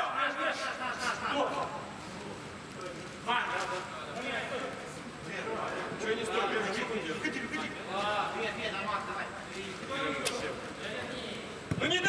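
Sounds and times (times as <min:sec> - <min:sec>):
men calling out and talking: 0:00.0 - 0:12.0.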